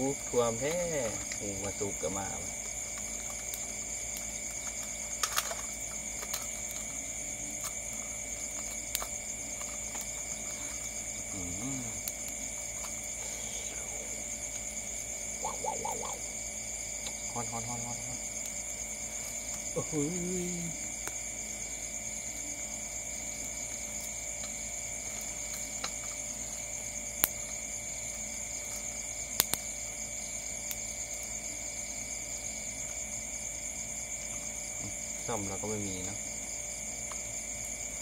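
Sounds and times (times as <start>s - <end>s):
crickets trilling: 0.0s - 38.0s.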